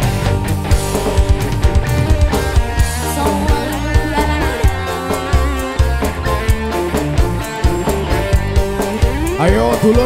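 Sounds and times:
live band instrumental music: 0.0 - 10.0
person calling out: 3.8 - 6.2, 9.0 - 10.0.

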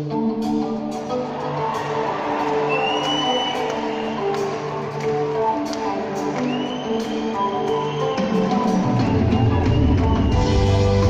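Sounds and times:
live band sustained chords: 0.0 - 11.0
audience whistling: 1.4 - 4.9, 5.9 - 11.0.

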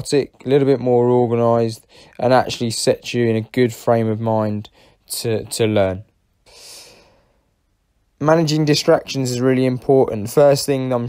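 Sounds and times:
man breathing into microphone: 1.9 - 2.2, 6.4 - 7.5.

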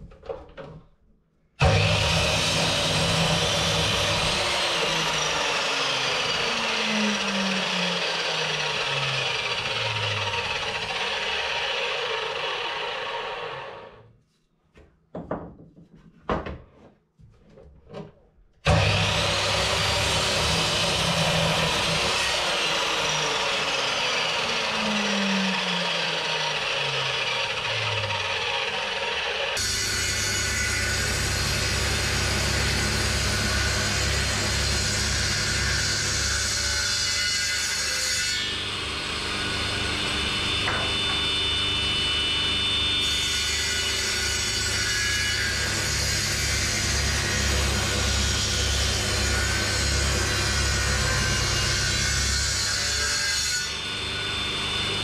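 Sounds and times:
electric mitre saw cutting wood: 1.6 - 14.1, 18.6 - 55.0.

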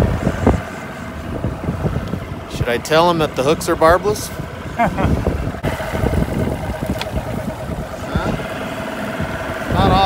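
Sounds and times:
outboard motor running: 0.0 - 10.0.

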